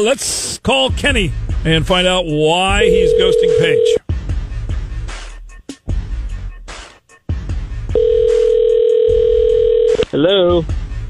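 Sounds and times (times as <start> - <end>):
telephone ringback tone: 2.8 - 4.0, 8.0 - 10.0.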